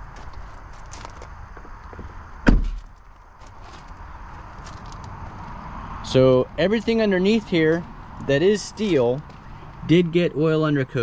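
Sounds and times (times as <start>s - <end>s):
footsteps on gravel: 0.0s - 5.8s, 6.6s - 10.0s
truck door shutting thump: 2.4s - 2.9s.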